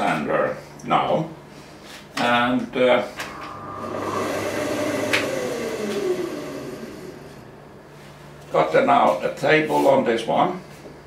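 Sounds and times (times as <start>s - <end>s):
electric motor winding down: 3.2s - 8.1s.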